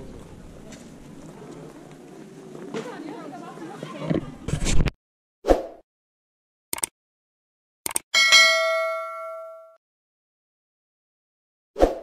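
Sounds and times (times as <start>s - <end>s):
notification bell chime: 8.2s - 9.8s.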